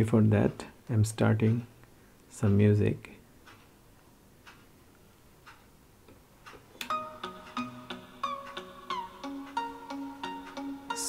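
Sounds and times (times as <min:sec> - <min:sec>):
electronic music from small loudspeaker: 0:06.8 - 0:11.0.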